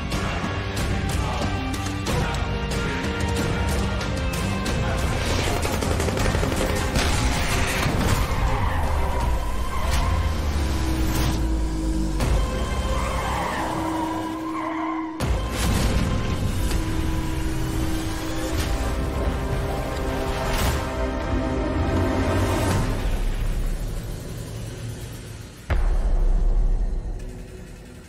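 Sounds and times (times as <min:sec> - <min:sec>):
action score music: 0:00.0 - 0:28.0.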